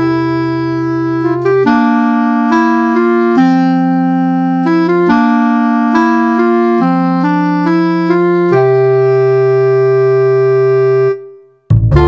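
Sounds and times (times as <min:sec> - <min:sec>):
electronic keyboard music: 0:00.0 - 0:12.0.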